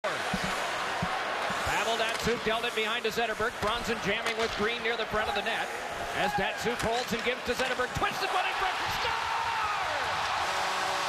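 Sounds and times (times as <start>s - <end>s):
crowd and rink noise: 0.0s - 11.0s.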